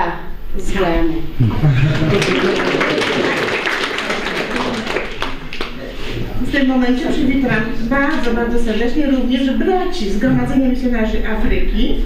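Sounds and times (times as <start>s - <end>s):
group of people clapping: 1.7s - 6.0s.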